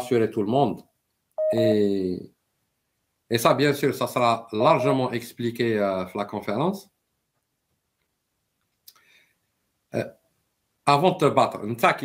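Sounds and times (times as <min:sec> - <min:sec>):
man speaking: 0:00.0 - 0:00.8, 0:01.4 - 0:02.3, 0:03.3 - 0:06.9, 0:10.0 - 0:10.2, 0:10.9 - 0:12.0.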